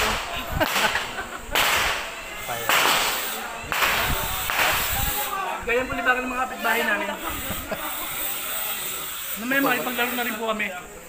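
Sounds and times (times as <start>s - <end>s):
gunshots with echo: 0.0s - 4.9s.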